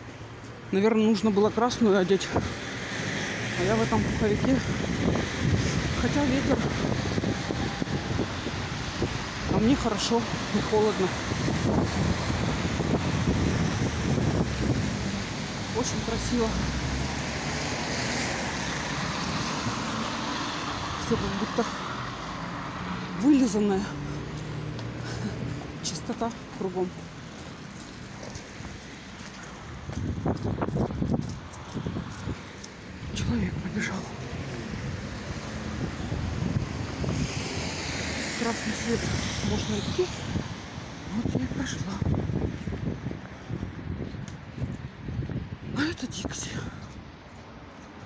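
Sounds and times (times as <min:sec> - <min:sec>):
street traffic: 0:00.0 - 0:48.0
wind buffeting microphone: 0:03.4 - 0:23.2, 0:24.0 - 0:48.0.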